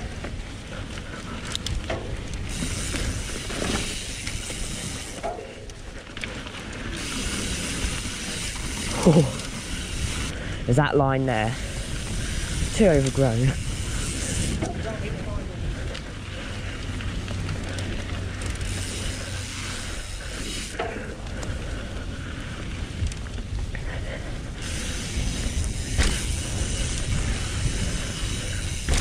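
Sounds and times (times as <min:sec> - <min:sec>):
bike tyres rolling over dirt: 0:00.0 - 0:29.0
wind rushing over microphone: 0:09.4 - 0:19.9, 0:21.2 - 0:29.0
bike knocking over bumps: 0:25.7 - 0:26.7, 0:28.6 - 0:29.0.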